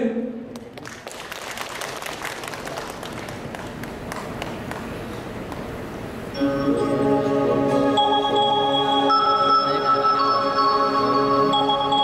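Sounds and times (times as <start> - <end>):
audience applauding: 0.5 - 5.7.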